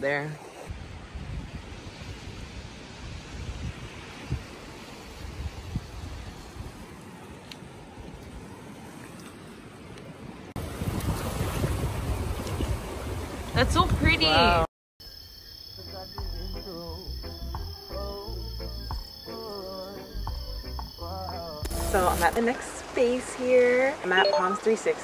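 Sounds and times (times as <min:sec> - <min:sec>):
wind buffeting microphone: 0:00.7 - 0:09.0, 0:10.5 - 0:14.7.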